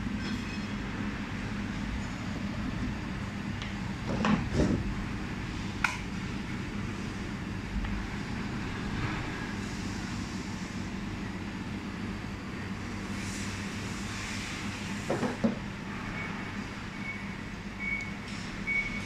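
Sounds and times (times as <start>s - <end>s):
cooling fan and chiller hum: 0.0s - 19.0s.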